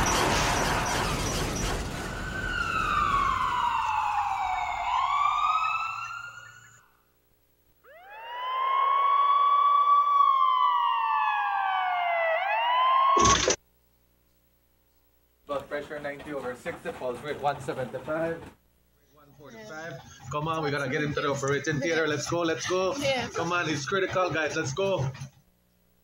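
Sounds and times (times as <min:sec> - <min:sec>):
ambulance siren wailing: 0:00.0 - 0:06.9, 0:07.9 - 0:13.6.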